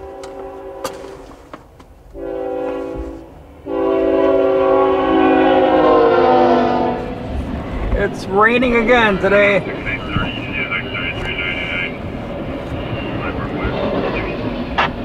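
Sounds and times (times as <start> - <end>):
locomotive air horn blasts: 0.0 - 1.4, 2.1 - 7.4
low train rumble: 0.0 - 15.0.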